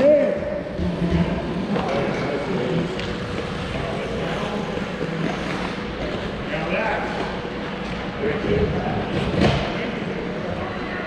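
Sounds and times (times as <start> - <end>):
ice rink hall drone: 0.0 - 11.0
skates on ice: 1.5 - 6.5.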